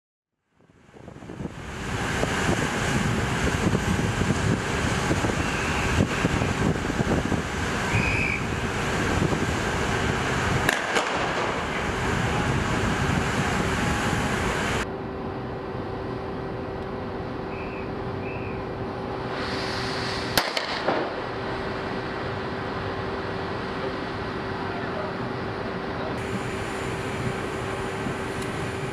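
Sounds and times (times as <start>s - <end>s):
faint machinery hum: 0.4s - 28.9s
wind buffeting microphone: 0.8s - 14.8s, 26.2s - 28.9s.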